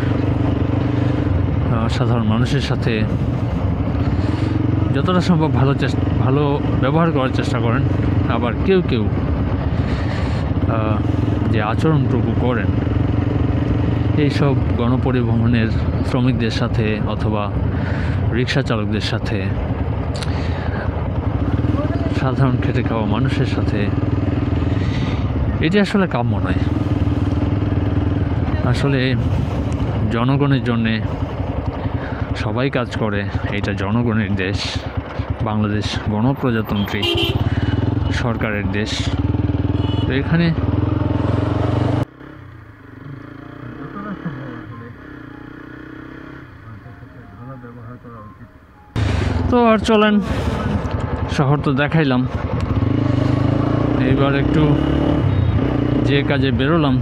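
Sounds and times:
motorcycle engine running: 0.0 - 47.8, 48.9 - 57.0.

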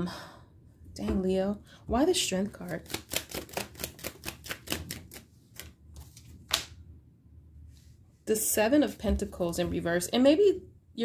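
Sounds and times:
cards being shuffled: 2.6 - 6.7.

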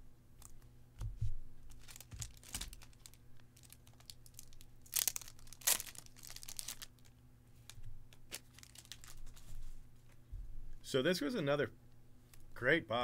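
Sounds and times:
plastic packaging crinkling: 1.7 - 9.6.

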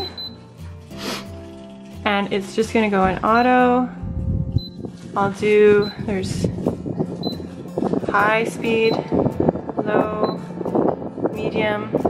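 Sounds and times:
air purifier short high beeps: 0.0 - 0.4, 5.8 - 6.1, 8.7 - 9.1, 10.2 - 10.5
background guitar music: 0.0 - 12.0.

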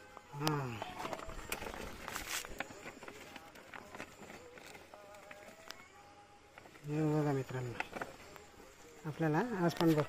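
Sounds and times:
plastic sack rustling: 0.6 - 5.6.

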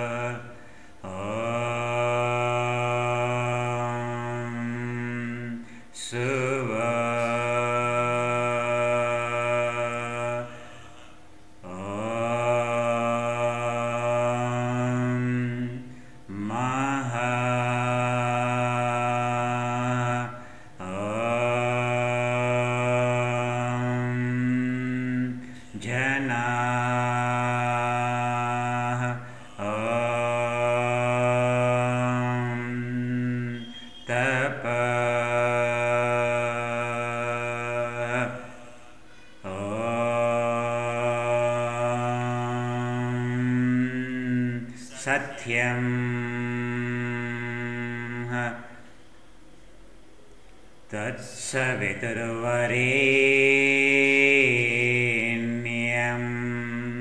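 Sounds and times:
man chanting in held tones: 0.0 - 49.1, 50.8 - 57.0
breaths: 0.5 - 1.0, 5.6 - 6.0, 10.5 - 11.3, 15.8 - 16.3, 20.3 - 20.8, 25.4 - 25.8, 29.2 - 29.6, 38.7 - 39.5.

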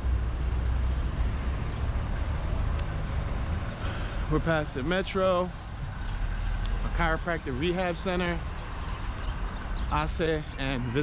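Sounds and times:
traffic engines rumbling: 0.0 - 11.0.

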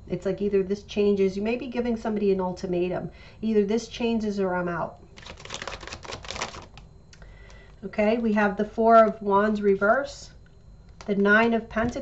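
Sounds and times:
cards being shuffled: 5.2 - 6.8.

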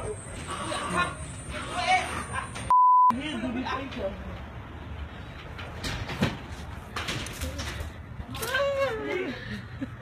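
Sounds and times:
low street rumble: 0.0 - 10.0.

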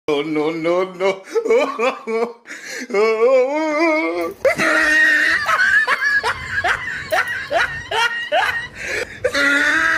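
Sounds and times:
person laughing high-pitched: 3.8 - 9.9.

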